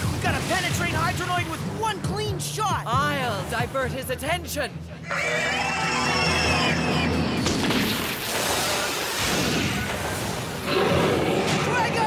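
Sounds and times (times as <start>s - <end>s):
dramatic music: 0.0s - 11.8s.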